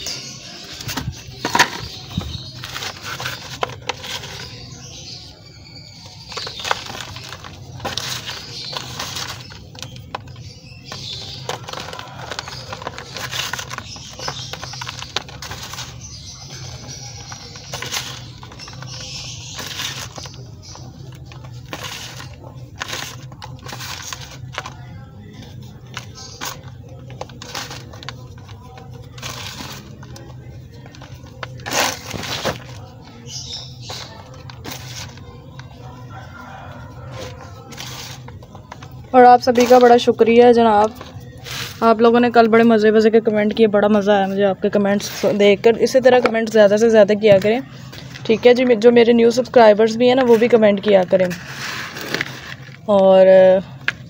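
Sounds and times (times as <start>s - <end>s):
chalk crumbling by hand: 0.0s - 44.0s, 44.7s - 52.9s.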